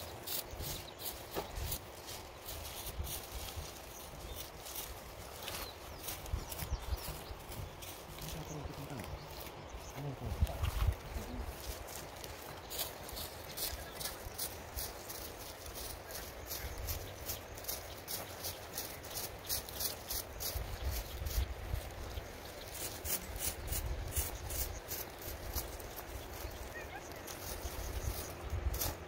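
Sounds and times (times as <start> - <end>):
hand tools swishing through grass: 0.0 - 9.2, 22.5 - 29.0.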